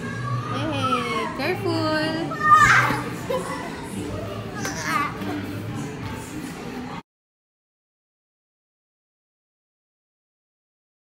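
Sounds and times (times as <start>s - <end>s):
children calling out: 0.0s - 1.4s, 2.2s - 5.4s
child shouting: 2.3s - 3.0s.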